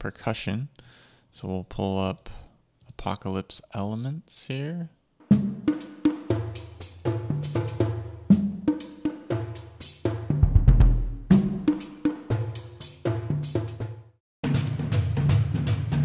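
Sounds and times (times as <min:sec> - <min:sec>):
cinematic drum hits: 0:05.3 - 0:09.5, 0:10.2 - 0:12.4.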